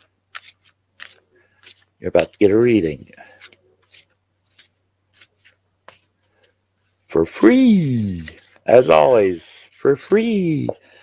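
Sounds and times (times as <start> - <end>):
cards being shuffled: 0.0 - 6.6, 7.5 - 10.8.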